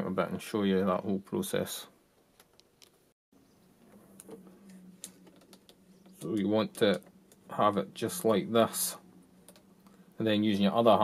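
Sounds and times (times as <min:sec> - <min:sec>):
faint low hum: 0:03.4 - 0:11.0.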